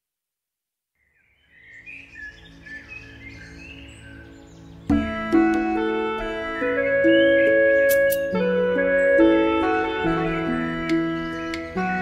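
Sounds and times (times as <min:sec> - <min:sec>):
birds chirping: 0:01.0 - 0:12.0.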